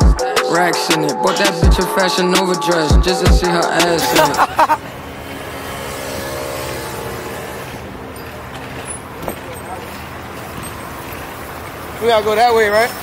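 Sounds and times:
road traffic noise: 0.0 - 13.0.

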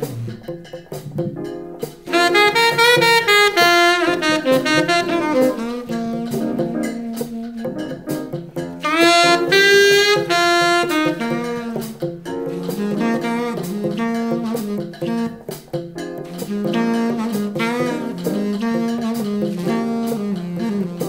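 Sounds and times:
plucked bass: 0.0 - 20.4
light percussion: 0.0 - 21.0
saxophone melody: 0.0 - 21.0.

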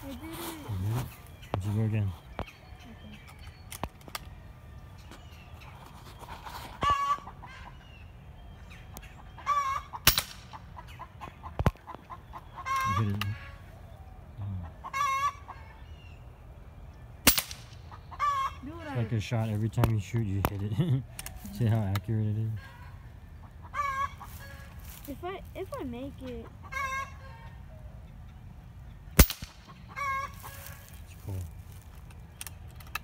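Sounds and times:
chicken calling: 6.5 - 7.8, 9.0 - 10.0, 10.6 - 13.7, 14.3 - 15.8, 17.9 - 19.2, 22.5 - 25.6, 26.4 - 27.8, 29.7 - 31.0
air rifle firing: 10.1 - 10.5, 17.3 - 17.8, 29.2 - 29.7.

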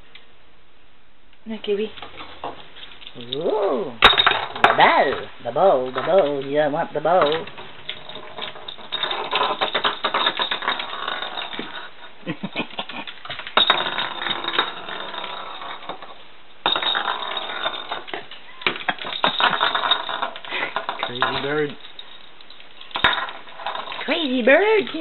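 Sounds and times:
wicker ball rattling on countertop: 1.9 - 25.0.

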